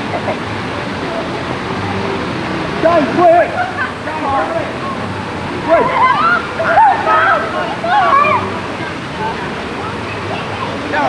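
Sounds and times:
falling water splashing: 0:00.0 - 0:11.0
high-pitched voices shouting: 0:05.6 - 0:08.9.

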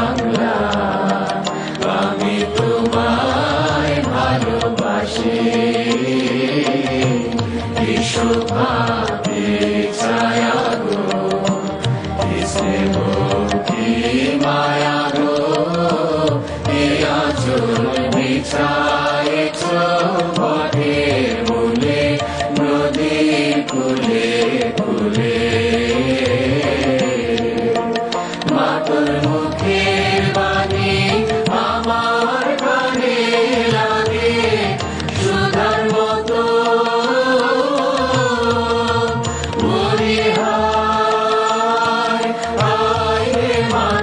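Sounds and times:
choir singing slow melody: 0:00.0 - 0:44.0
voices chanting: 0:28.5 - 0:44.0.

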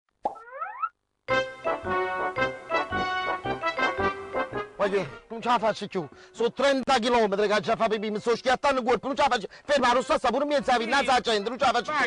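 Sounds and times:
cartoon plop: 0:00.2 - 0:00.9
upbeat music: 0:00.3 - 0:12.0.

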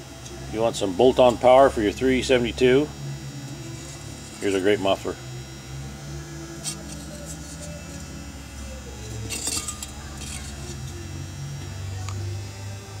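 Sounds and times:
sheet metal part clinking: 0:09.2 - 0:10.6.

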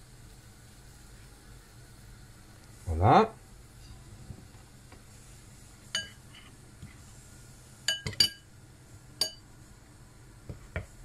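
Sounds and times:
metal spoon clinking ceramic bowl: 0:06.0 - 0:06.2, 0:07.9 - 0:08.5, 0:09.2 - 0:09.4.

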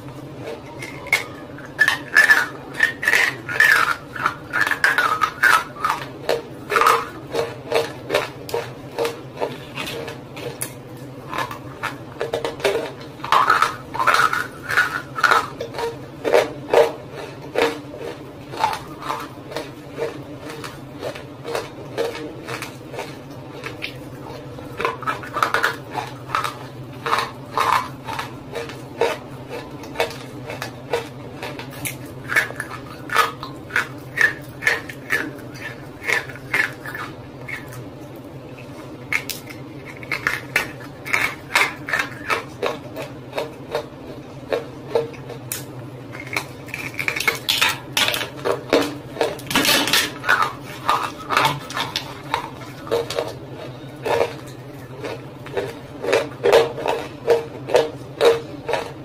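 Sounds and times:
mouth crunching hard food: 0:00.0 - 0:59.0.

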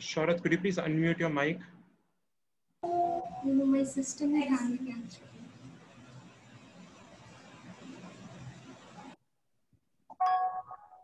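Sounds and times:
microphone background hiss: 0:02.8 - 0:09.2.

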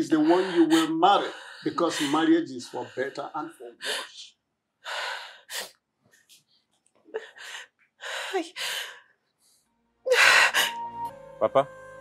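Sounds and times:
soft background music: 0:09.7 - 0:12.0.

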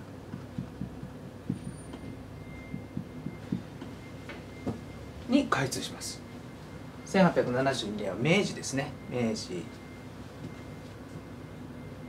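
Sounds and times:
marker tapping on whiteboard: 0:00.3 - 0:02.0.

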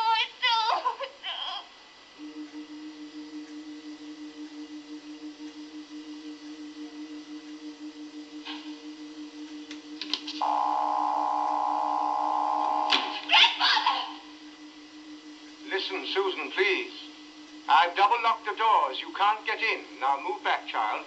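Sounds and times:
steady electronic hum: 0:00.0 - 0:21.0
low pulsing electronic drone: 0:02.2 - 0:21.0.

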